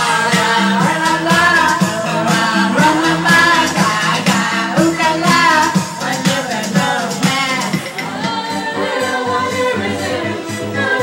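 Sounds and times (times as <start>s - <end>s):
karaoke song over sound system: 0.0s - 11.0s
people singing along: 0.0s - 11.0s.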